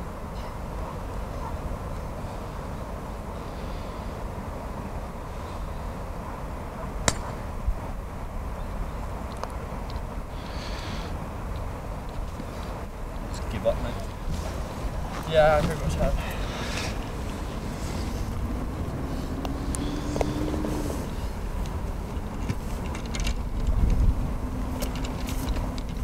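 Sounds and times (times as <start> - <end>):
low wind rumble on microphone: 0.0 - 26.0
putter striking golf ball: 7.0 - 7.4.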